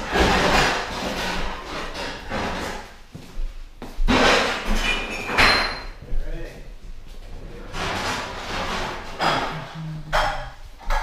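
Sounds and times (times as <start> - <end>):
rustling and scraping on wooden floor: 0.0 - 6.1, 6.7 - 11.0.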